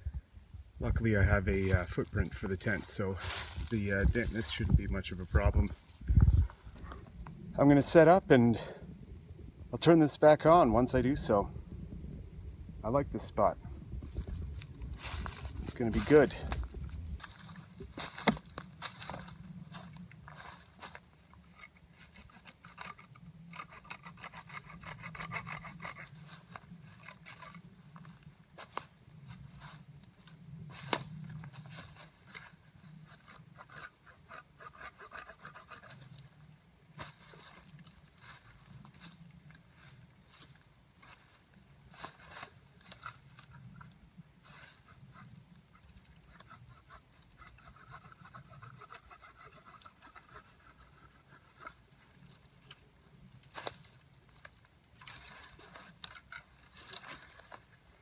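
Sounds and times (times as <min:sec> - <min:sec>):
dry leaves and twigs raked by hand: 0:01.6 - 0:06.8, 0:14.0 - 0:36.4, 0:37.0 - 0:45.4, 0:46.0 - 0:58.0
twigs snapping: 0:16.5 - 0:21.0, 0:30.7 - 0:32.5, 0:53.4 - 0:57.8.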